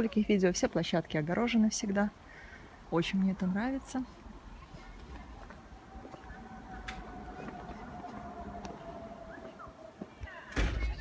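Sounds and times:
low rumble: 5.0 - 10.1.

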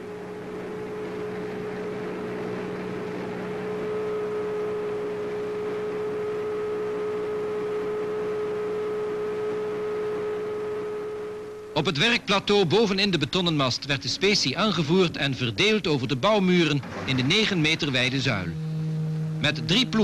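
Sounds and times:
machine hum over hiss: 0.0 - 16.2, 16.8 - 20.0.

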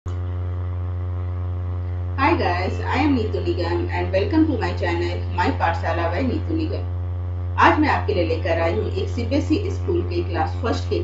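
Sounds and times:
low buzzy electrical hum: 0.1 - 11.0.

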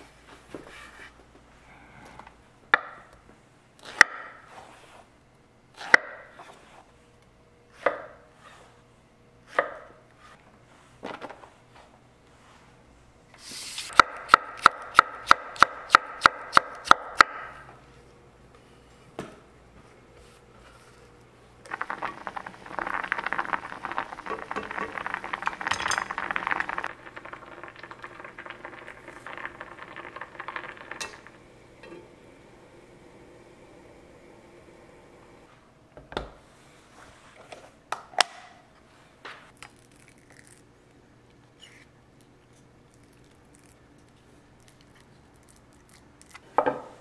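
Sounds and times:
broth boiling hard in pot: 21.6 - 35.5
utensil stirring in pot: 21.7 - 32.0.

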